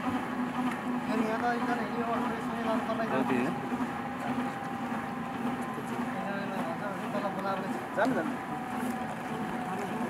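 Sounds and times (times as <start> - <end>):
helicopter engine idling: 0.0 - 10.0.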